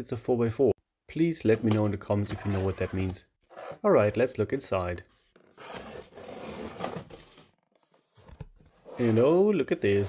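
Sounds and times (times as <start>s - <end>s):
cardboard rustling and scraping: 5.2s - 10.0s.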